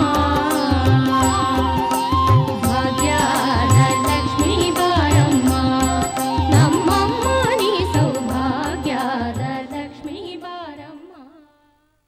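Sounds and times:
devotional song with ornamented melody: 0.0s - 11.8s.

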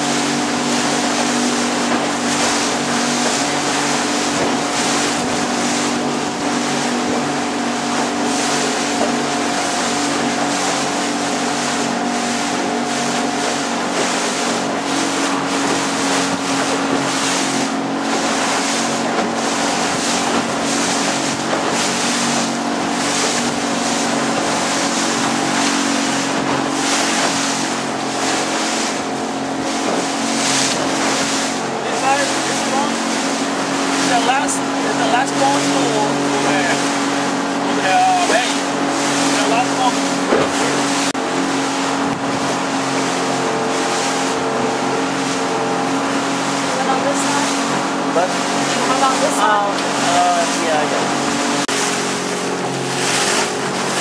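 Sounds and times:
boat motor running: 0.0s - 54.0s
water rushing: 0.0s - 54.0s
wind: 0.0s - 54.0s.

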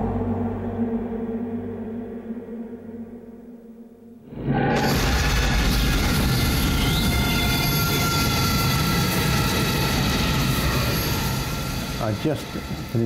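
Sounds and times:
rumbling roar: 4.3s - 8.3s.

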